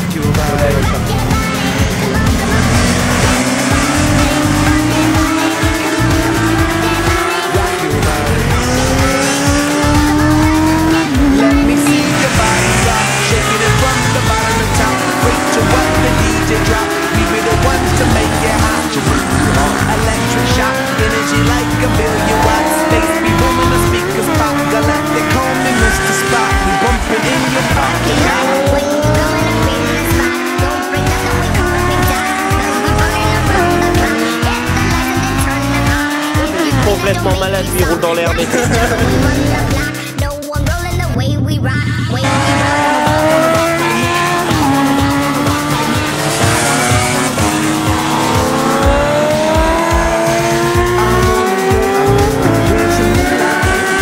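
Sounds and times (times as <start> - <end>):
motorcycle engines revving: 0.0 - 41.2, 42.1 - 54.0
music: 0.0 - 54.0.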